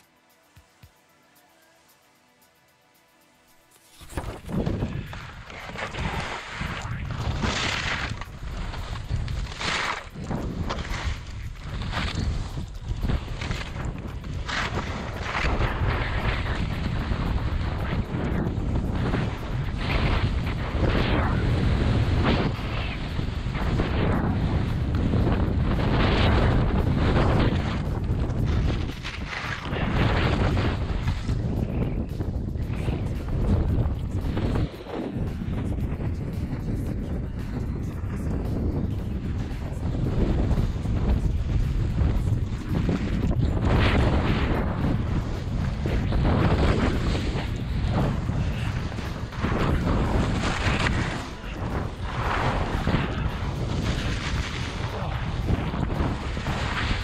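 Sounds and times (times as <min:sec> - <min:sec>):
skis scraping over crusted snow: 0:03.6 - 0:32.0, 0:34.2 - 0:57.0
wind rushing over microphone: 0:03.9 - 0:57.0.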